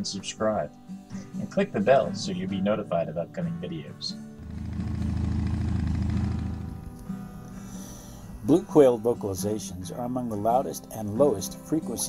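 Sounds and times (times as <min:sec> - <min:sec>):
engine idling: 0:04.4 - 0:07.0.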